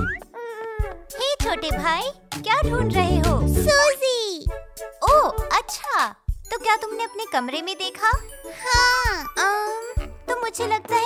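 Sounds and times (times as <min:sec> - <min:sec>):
music with bell-like tinkling: 0:08.1 - 0:10.3.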